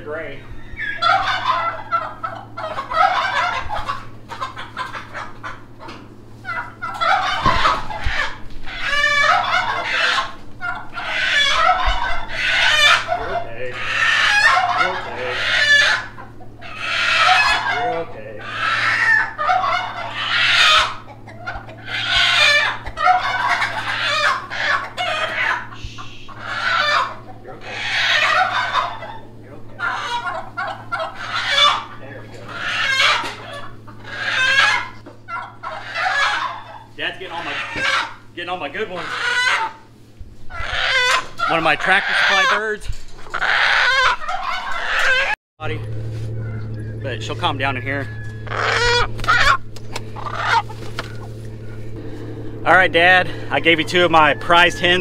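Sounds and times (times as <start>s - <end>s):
hens clucking and squawking: 0.0s - 55.0s.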